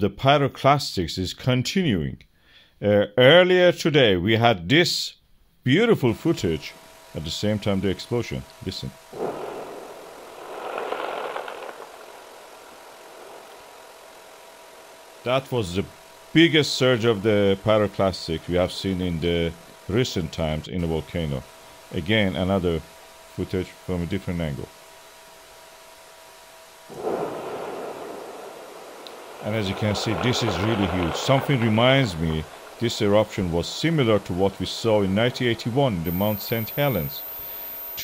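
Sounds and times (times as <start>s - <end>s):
pyroclastic flow rushing and crackling: 26.9s - 35.7s.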